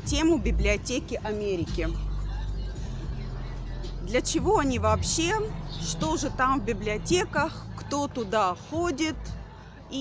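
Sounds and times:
vehicle going by: 0:00.0 - 0:09.6
low rumble of road traffic: 0:00.0 - 0:10.0.

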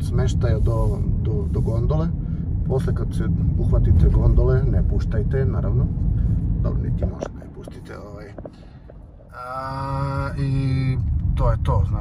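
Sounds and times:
car rumble: 0:00.0 - 0:12.0.

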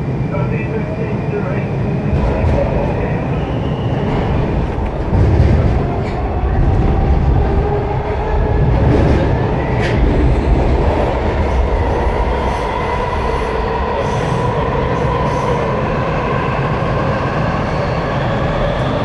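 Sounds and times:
train wheels rumbling on track: 0:00.0 - 0:19.0.

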